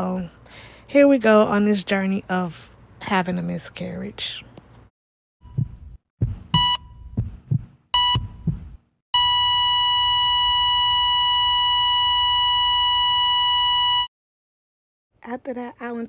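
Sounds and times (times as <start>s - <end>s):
heartbeat: 5.4s - 8.9s
heart monitor beeping: 5.4s - 14.1s
flatline tone: 9.2s - 14.1s.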